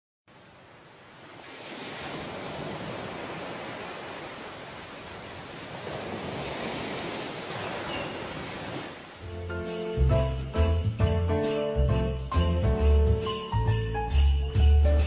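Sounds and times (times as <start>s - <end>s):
ocean waves on sandy shore: 0.3s - 9.4s.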